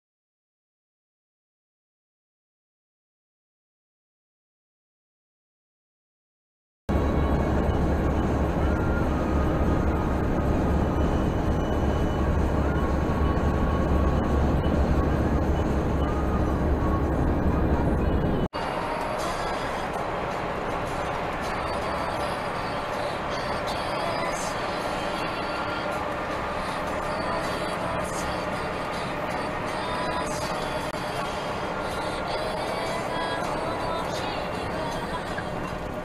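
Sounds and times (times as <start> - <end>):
hissy road noise: 6.9 - 36.0
road and engine rumble in cab: 6.9 - 36.0.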